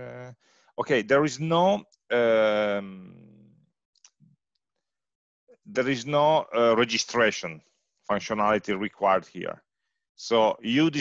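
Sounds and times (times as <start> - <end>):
man's drawn-out hesitation sound: 0.0 - 3.3, 8.1 - 9.5.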